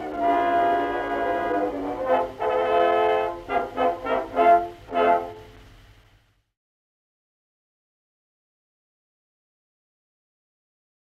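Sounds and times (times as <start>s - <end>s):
orchestra holding brass chord: 0.0s - 5.6s.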